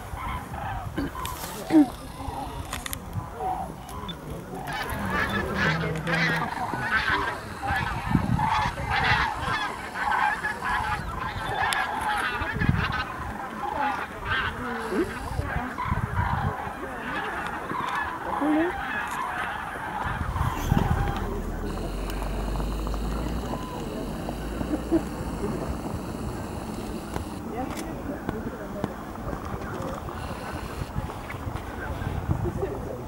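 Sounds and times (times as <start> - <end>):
cranes trumpeting calls: 0.0 - 2.7, 3.3 - 27.7, 29.9 - 31.4.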